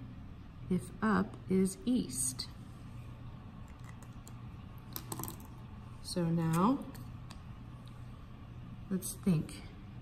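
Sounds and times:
quiet room hum: 0.0 - 10.0.

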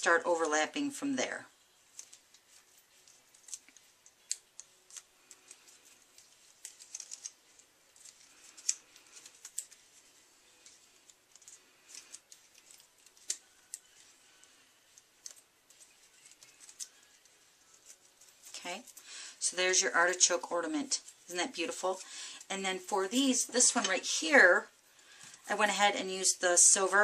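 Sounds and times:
paper crackling: 1.8 - 18.9.

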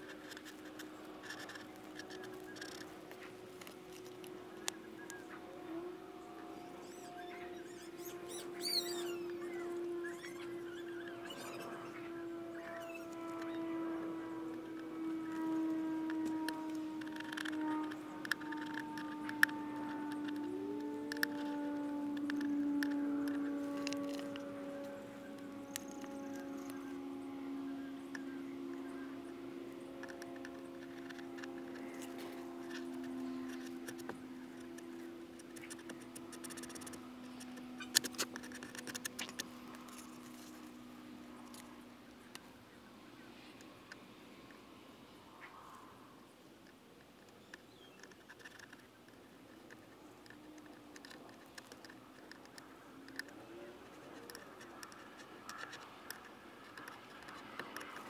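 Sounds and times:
decals scratching on plastic: 0.0 - 5.2, 6.3 - 27.4, 28.0 - 40.8, 47.2 - 58.0.

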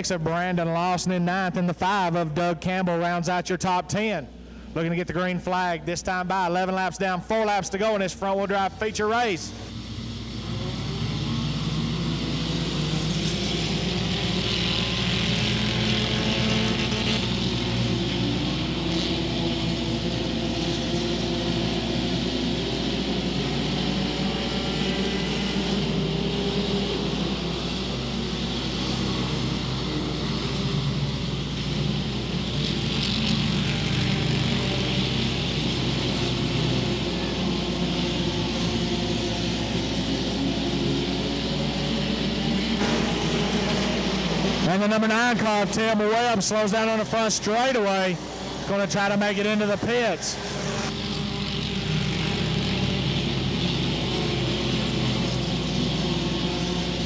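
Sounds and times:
race car engines droning: 0.0 - 57.0.

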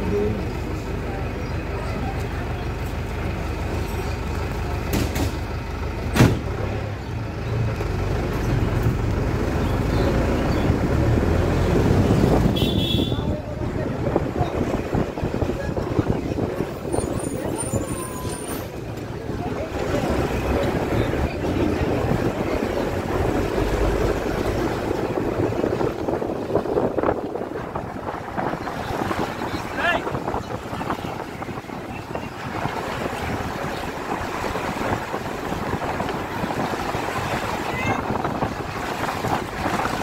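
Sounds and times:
vehicle engine rumbling: 0.0 - 40.0
wind buffeting microphone: 8.6 - 40.0.

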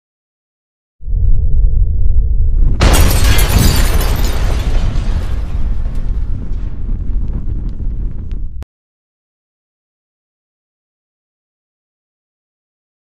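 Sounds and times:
low rumble: 1.0 - 8.6
loud explosion-like blast: 1.1 - 8.6.

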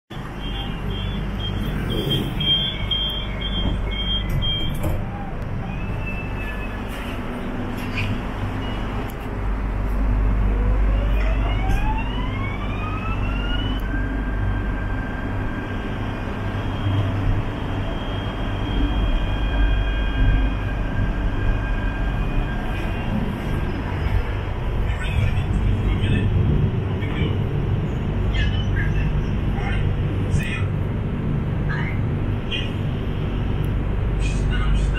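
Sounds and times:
electric train rumbling: 0.1 - 34.9
train traction motor whine: 0.2 - 26.3.

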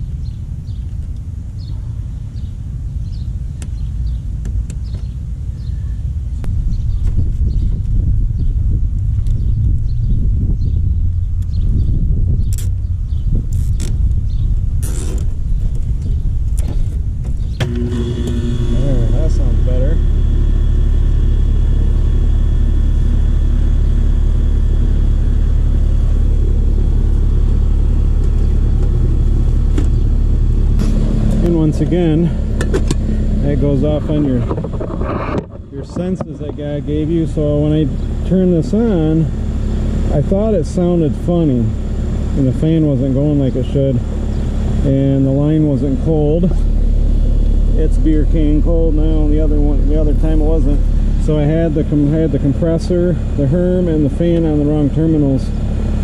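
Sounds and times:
air conditioner unit humming: 0.0 - 56.0
rumbling noise: 5.3 - 56.0
sharp clicks of wiring work: 12.5 - 12.8.

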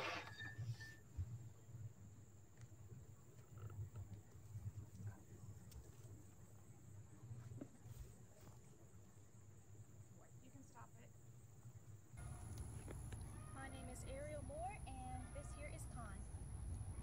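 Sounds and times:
faint outdoor background: 0.0 - 17.0.

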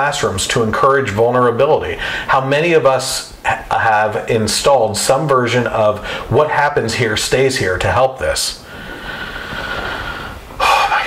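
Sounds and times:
person breathing noisily: 2.0 - 2.3, 6.0 - 6.3, 8.6 - 11.0
sharp breath: 2.0 - 2.3, 8.6 - 11.0.

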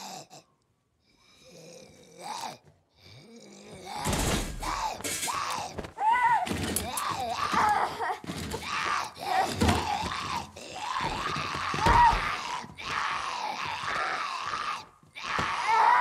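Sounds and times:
zombie groaning growls: 0.0 - 0.5, 1.3 - 5.8, 8.6 - 16.0
low thuds of struggle: 4.0 - 13.8
girl screaming and crying: 4.6 - 6.5.

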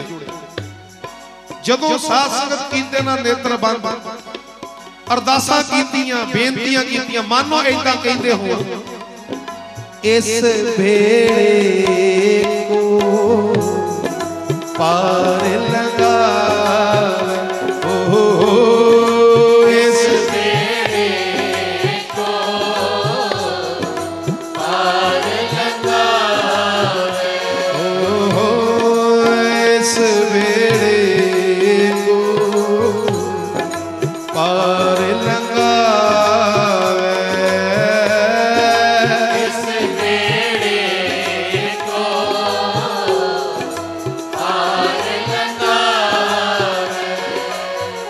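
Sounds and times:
instrumental accompaniment: 0.0 - 48.0
voices chanting long notes: 12.7 - 48.0.

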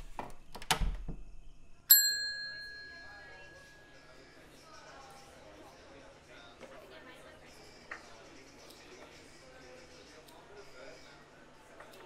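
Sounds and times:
service bell ding: 1.9 - 3.9.

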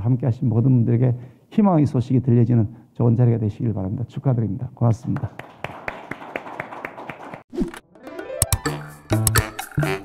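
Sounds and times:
audience applause: 5.3 - 7.5.

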